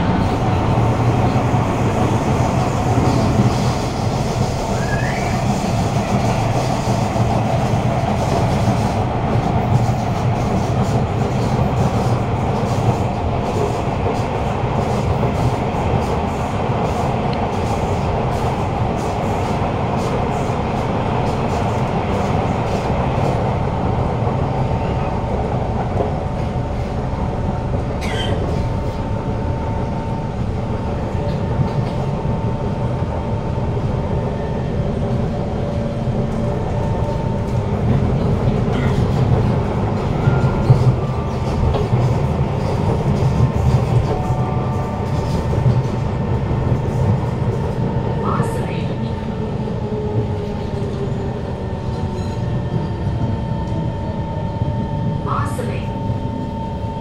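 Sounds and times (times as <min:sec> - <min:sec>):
train running noise rumble: 0:00.0 - 0:57.0.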